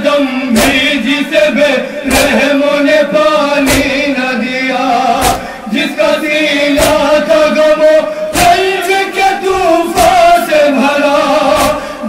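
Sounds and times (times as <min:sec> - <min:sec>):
men chanting a lament: 0:00.0 - 0:12.0
chest-beating slap: 0:00.6 - 0:01.0, 0:02.0 - 0:02.5, 0:03.6 - 0:04.1, 0:05.2 - 0:05.6, 0:06.8 - 0:07.2, 0:08.3 - 0:08.8, 0:09.9 - 0:10.3, 0:11.5 - 0:11.9.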